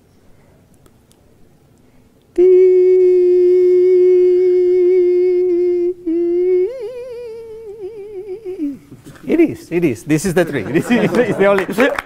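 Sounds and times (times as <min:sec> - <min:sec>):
person humming with vibrato: 0:02.3 - 0:09.0.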